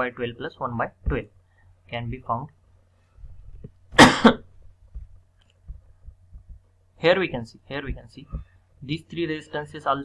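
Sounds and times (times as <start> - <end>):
person coughing: 4.0 - 4.5.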